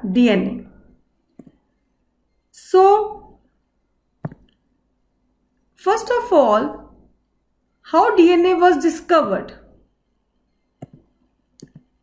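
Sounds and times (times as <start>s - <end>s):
computer mouse clicks: 1.3s - 1.6s, 4.2s - 4.6s, 10.5s - 12.0s.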